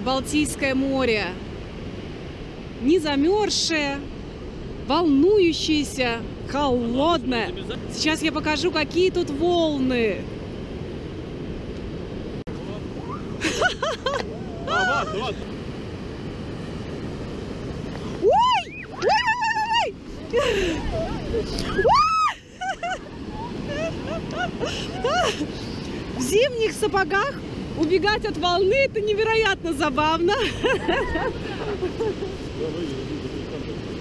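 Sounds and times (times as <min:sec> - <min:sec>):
surf washing on sand: 0:00.0 - 0:34.0
wind buffeting microphone: 0:00.0 - 0:34.0
voices calling out: 0:12.6 - 0:15.6, 0:18.1 - 0:28.0
child squealing: 0:13.0 - 0:13.4, 0:20.8 - 0:22.4
people laughing: 0:13.4 - 0:15.5, 0:20.2 - 0:26.0, 0:30.3 - 0:32.6.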